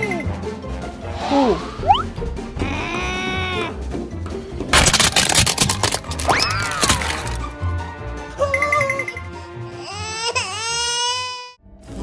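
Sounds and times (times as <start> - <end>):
background music: 0.0 - 12.0
plastic toy cracking under tyre: 4.7 - 7.4.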